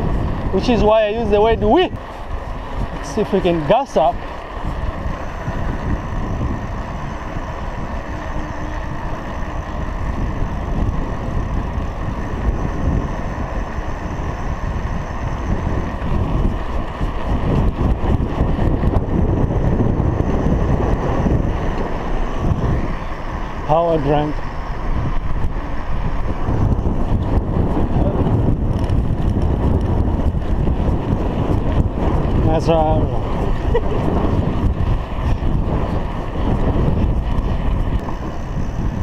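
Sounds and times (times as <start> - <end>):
bicycle tyre hum on tarmac: 0.0 - 39.0
wind buffeting microphone: 0.0 - 39.0.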